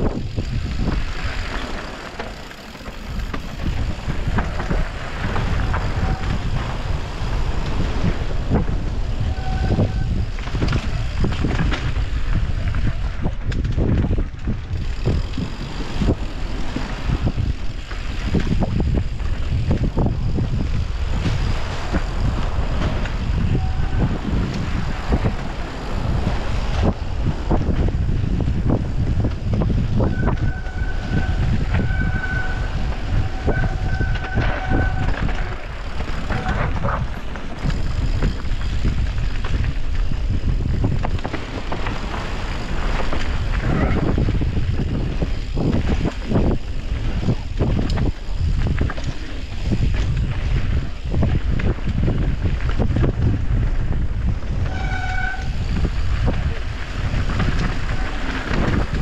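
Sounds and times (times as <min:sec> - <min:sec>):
bike knocks and rattles: 0:00.0 - 0:59.0
bike tyre rumble on dirt: 0:00.0 - 0:59.0
wind rushing over microphone: 0:00.0 - 0:59.0.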